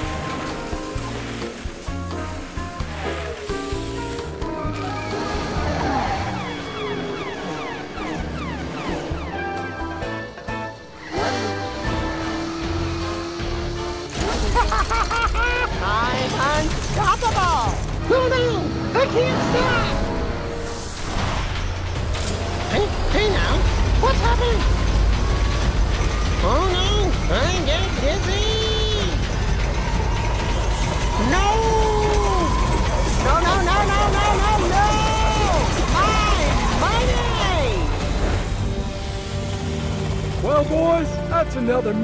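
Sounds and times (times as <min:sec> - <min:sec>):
toy car engine revs: 0:11.0 - 0:15.2.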